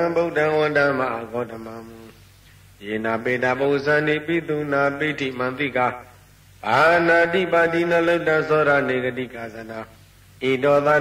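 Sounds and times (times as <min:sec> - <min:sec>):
man chanting verses: 0:00.0 - 0:02.2, 0:02.8 - 0:11.0.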